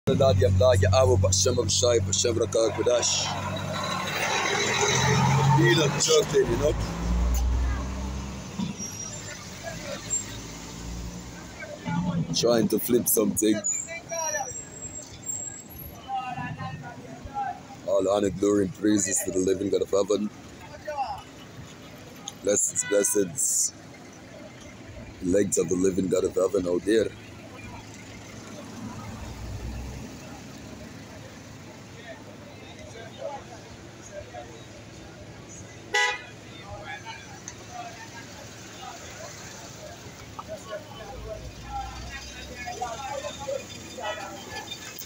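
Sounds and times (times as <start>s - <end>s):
outdoor background noise: 0.0s - 45.0s
vehicle engine rumbling: 0.0s - 45.0s.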